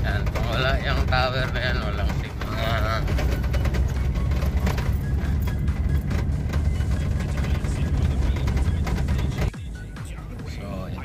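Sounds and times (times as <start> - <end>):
music playing: 0.0 - 11.0
vehicle rumbling on rough road: 0.0 - 11.0.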